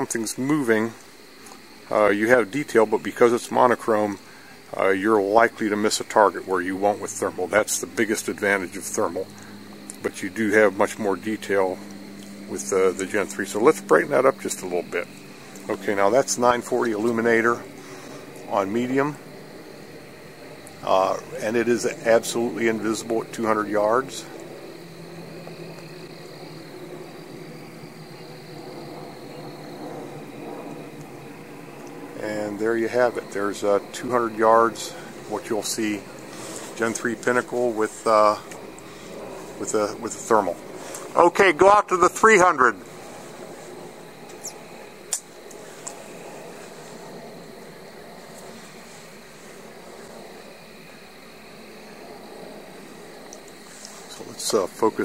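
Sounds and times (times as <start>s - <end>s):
background hiss: 0.0s - 55.0s
constant low hum: 0.0s - 55.0s.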